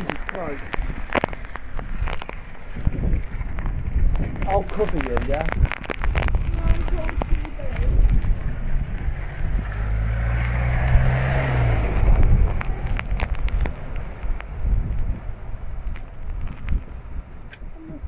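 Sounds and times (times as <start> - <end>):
wind buffeting microphone: 0.0 - 18.0
vehicle passing through water: 9.4 - 13.6.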